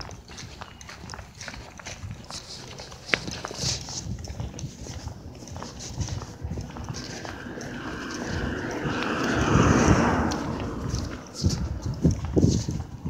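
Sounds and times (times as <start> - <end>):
footsteps on asphalt: 0.0 - 13.0.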